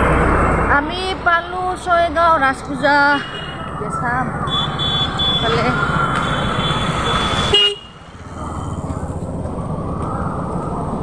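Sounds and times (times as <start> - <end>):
street traffic: 0.0 - 11.0
vehicle horn: 6.2 - 8.0.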